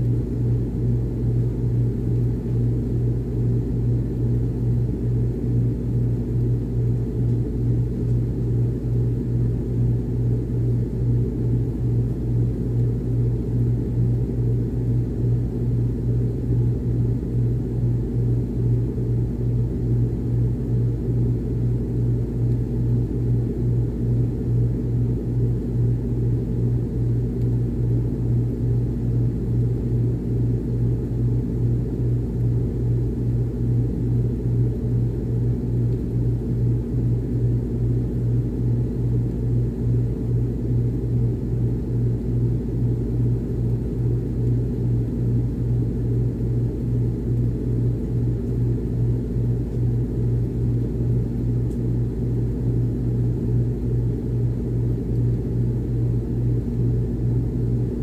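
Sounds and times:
air conditioner humming: 0.0s - 58.0s.

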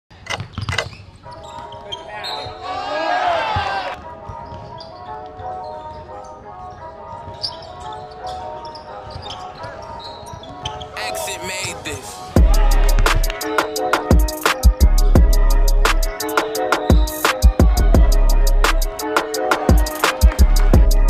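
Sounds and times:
basketball bouncing: 0.2s - 1.0s
people shouting: 2.6s - 4.0s, 12.4s - 13.6s.

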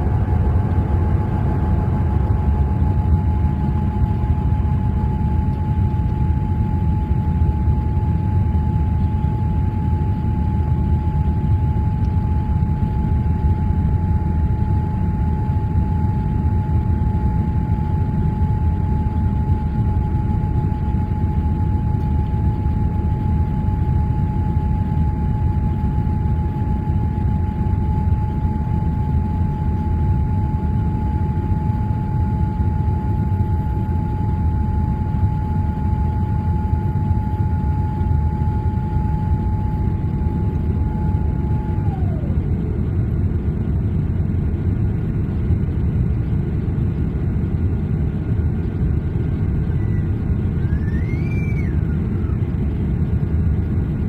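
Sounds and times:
jet engines roaring in cabin: 0.0s - 54.0s
steady engine whine: 0.0s - 54.0s.

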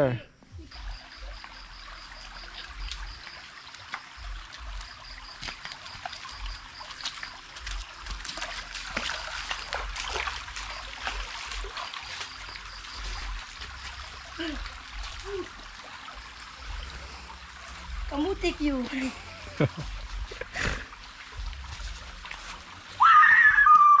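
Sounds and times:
creek water trickling: 0.0s - 24.0s
feet wading through water and mud: 0.6s - 23.7s
wind rumbling on microphone: 12.4s - 23.7s.

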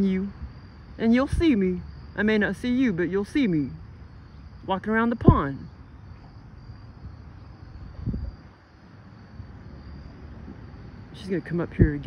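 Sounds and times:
insect trill: 0.0s - 12.0s
low wind rumble: 0.0s - 12.0s.

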